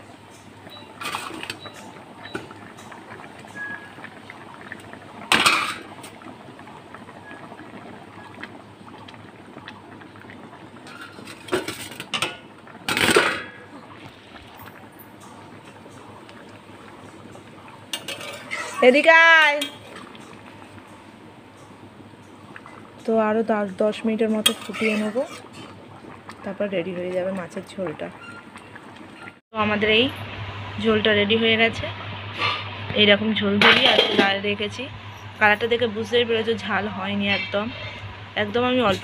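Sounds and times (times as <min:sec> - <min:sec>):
curry bubbling in a wok: 0:00.0 - 0:29.4.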